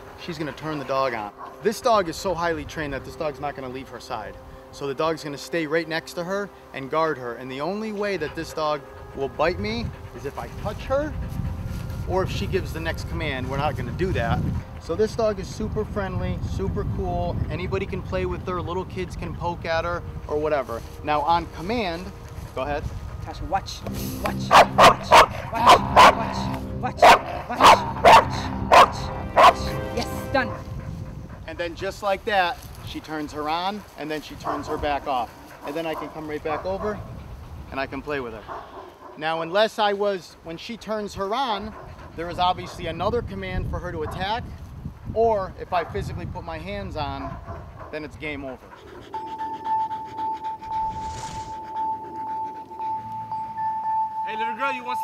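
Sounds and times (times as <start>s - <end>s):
dog panting: 0.0s - 2.4s, 7.5s - 15.9s, 16.9s - 39.2s, 40.8s - 53.6s
dog barking sharply: 24.2s - 29.7s
high-pitched held tone: 49.2s - 55.0s.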